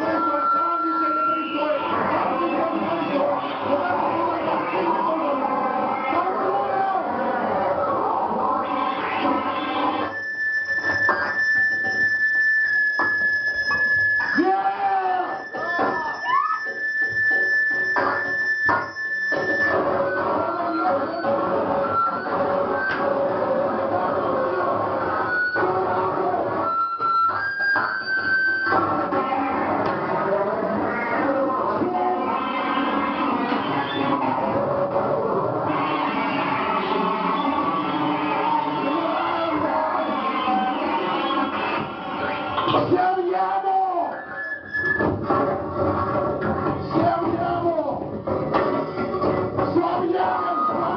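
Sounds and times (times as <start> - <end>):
harsh noise wall: 0.0 - 50.9
high whistling tone: 9.1 - 23.2, 25.0 - 28.9, 43.7 - 45.2.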